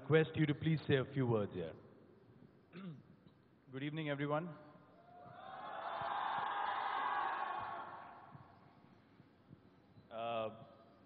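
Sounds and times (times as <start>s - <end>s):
audience cheering: 5.2s - 8.3s.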